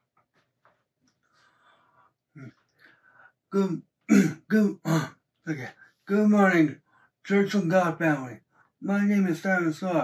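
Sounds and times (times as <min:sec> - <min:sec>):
man speaking: 0:03.5 - 0:10.0.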